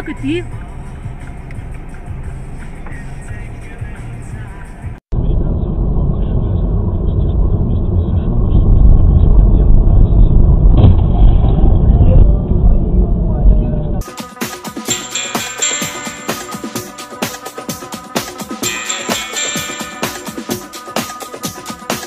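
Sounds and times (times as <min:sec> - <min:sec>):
car driving rumble from cabin: 0:00.0 - 0:14.0
low hum inside car: 0:00.0 - 0:14.0.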